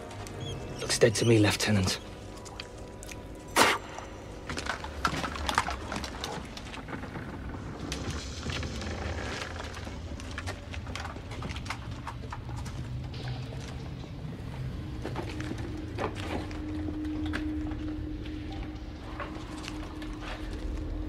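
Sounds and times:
boots and gear clicking and scraping: 0:02.0 - 0:21.0.

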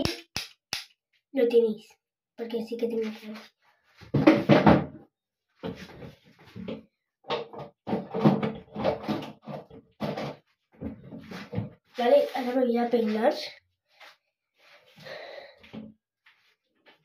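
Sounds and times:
objects knocking and rustling: 0:04.0 - 0:05.0, 0:05.6 - 0:11.9.

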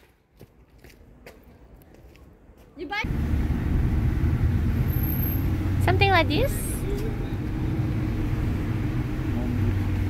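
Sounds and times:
car engine and road rumble: 0:03.0 - 0:10.0.

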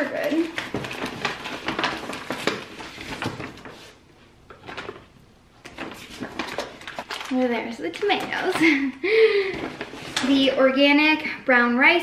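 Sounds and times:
groceries knocking in bag: 0:00.0 - 0:03.6
paper bag rustling: 0:00.0 - 0:08.9, 0:09.5 - 0:10.8.

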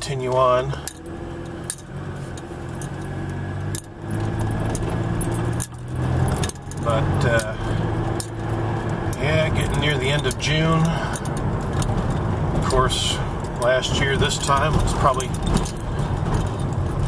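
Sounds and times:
car engine and road hum: 0:00.0 - 0:17.0
light clicks and rattles in cabin: 0:00.0 - 0:17.0.

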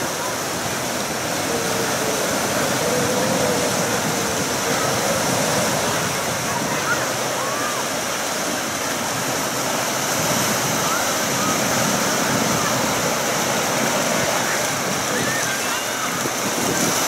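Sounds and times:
distant voices: 0:00.0 - 0:17.0.

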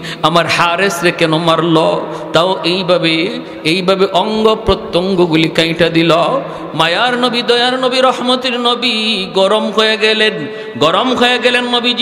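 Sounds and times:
man chanting: 0:00.0 - 0:12.0.

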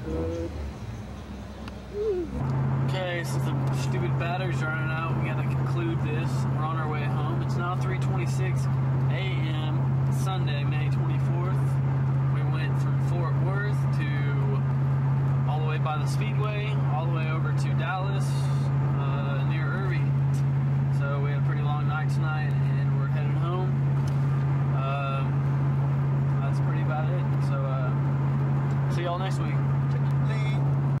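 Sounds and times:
car engine droning: 0:00.0 - 0:31.0.

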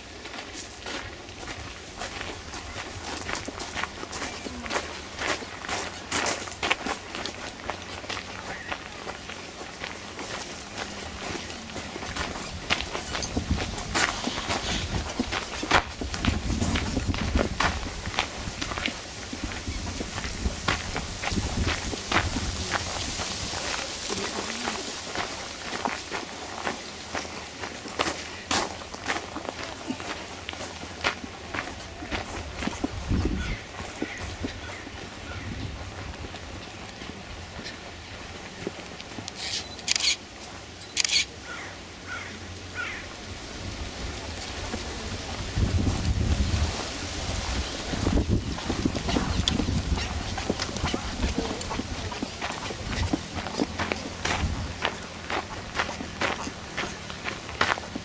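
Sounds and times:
footsteps on stone paving: 0:00.0 - 0:41.2, 0:43.8 - 0:58.0.

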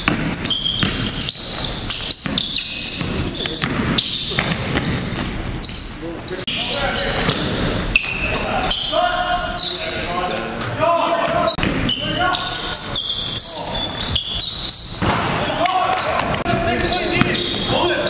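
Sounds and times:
basketball bouncing on hardwood: 0:00.0 - 0:01.2
players' voices: 0:02.4 - 0:05.2, 0:05.8 - 0:18.0.

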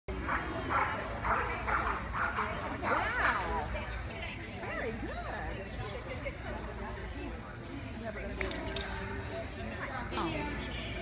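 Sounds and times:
dog barking: 0:00.2 - 0:03.3.

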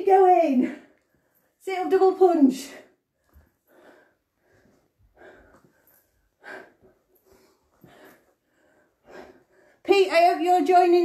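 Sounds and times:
woman breathing hard: 0:03.0 - 0:09.9.

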